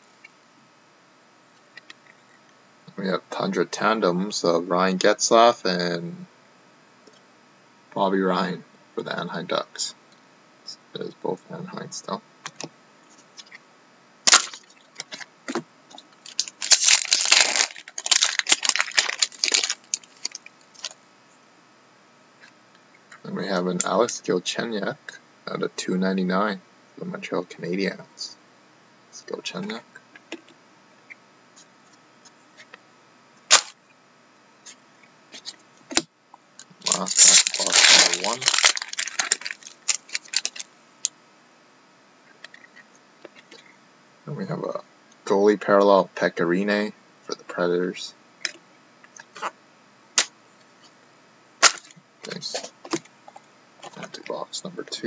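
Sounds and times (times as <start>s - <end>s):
foil wrapper tearing and crinkling: 14.3s - 15.3s, 16.2s - 21.0s, 33.5s - 33.8s, 36.8s - 40.7s, 51.6s - 51.9s.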